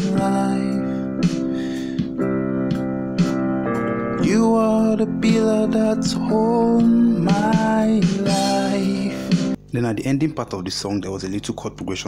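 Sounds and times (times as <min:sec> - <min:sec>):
person singing: 0:00.0 - 0:02.1, 0:04.1 - 0:09.6
electronic keyboard gospel chords: 0:00.0 - 0:09.7.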